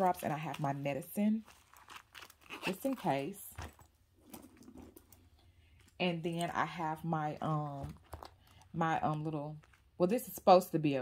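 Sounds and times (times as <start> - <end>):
faint clicks of small items: 7.8 - 9.9.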